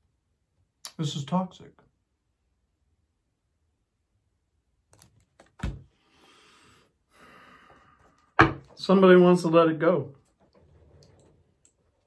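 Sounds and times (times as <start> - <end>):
man speaking: 0.9 - 1.8.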